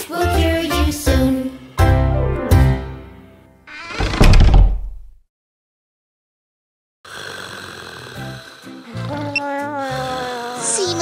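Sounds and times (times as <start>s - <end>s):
children's song: 0.0s - 2.9s
door closing with heavy thud: 3.7s - 5.2s.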